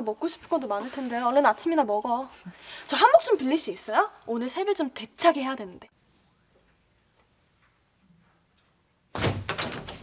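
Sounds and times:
quick knocks: 9.1s - 10.0s
door opening thunk: 9.2s - 10.0s.

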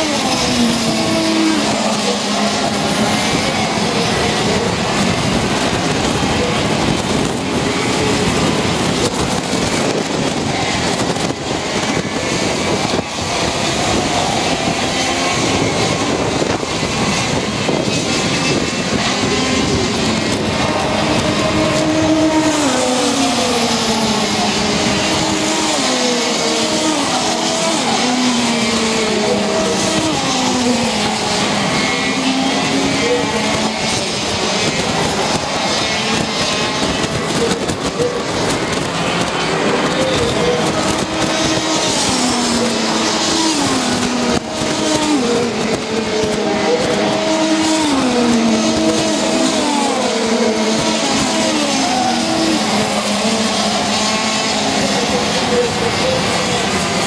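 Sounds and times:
racing kart engines: 0.0s - 57.0s.

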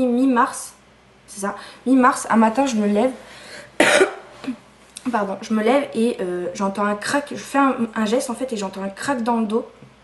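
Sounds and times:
woman coughing: 3.8s - 4.6s.

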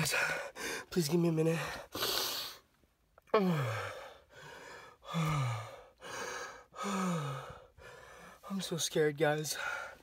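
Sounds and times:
man breathing hard: 0.0s - 0.9s, 1.5s - 2.7s, 3.3s - 8.5s, 9.5s - 10.0s
man sighing: 3.2s - 7.7s.

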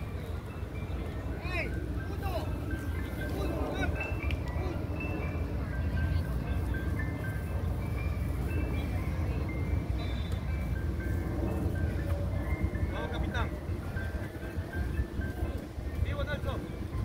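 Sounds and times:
ice cream truck jingle: 0.0s - 17.0s
steady low rumble: 0.0s - 17.0s.

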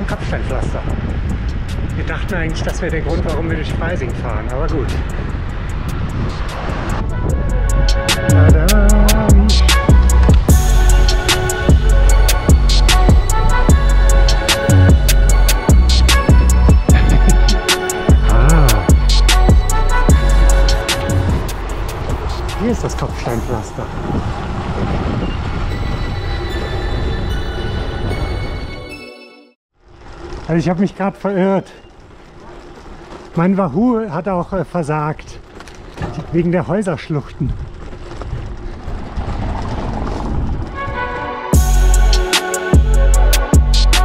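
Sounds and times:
bike rattling over cobblestones: 0.0s - 27.4s, 29.8s - 43.8s
wind buffeting microphone: 0.0s - 28.8s, 29.9s - 44.0s.

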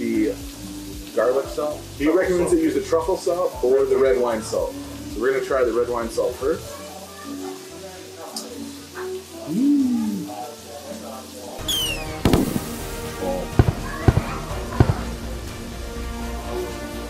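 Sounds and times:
background music: 0.0s - 17.0s
meat sizzling on a grill: 0.0s - 17.0s
fat spattering pops: 11.7s - 12.9s, 13.5s - 15.1s.

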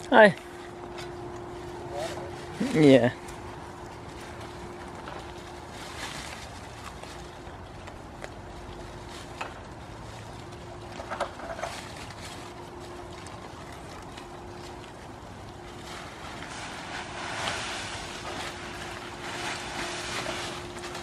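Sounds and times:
goats tearing at leafy branches: 0.0s - 21.0s
rustle of leaves: 0.0s - 21.0s.

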